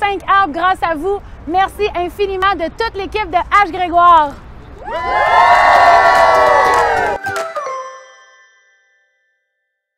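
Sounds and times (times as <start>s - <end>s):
group of people cheering: 4.8s - 7.3s.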